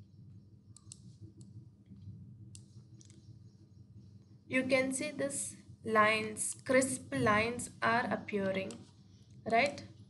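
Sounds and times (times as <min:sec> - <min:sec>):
low steady hum: 0:00.0 - 0:10.0
computer mouse clicking: 0:00.7 - 0:03.3, 0:08.4 - 0:08.9.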